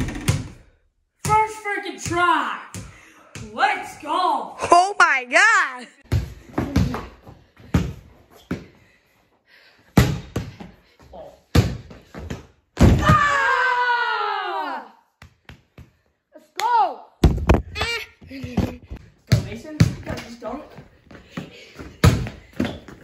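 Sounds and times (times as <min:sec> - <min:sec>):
basketball bouncing: 0:00.0 - 0:00.6, 0:06.1 - 0:08.7, 0:10.0 - 0:10.8, 0:11.5 - 0:13.0, 0:17.2 - 0:20.4, 0:21.1 - 0:23.0
long falling yell: 0:13.0 - 0:14.9.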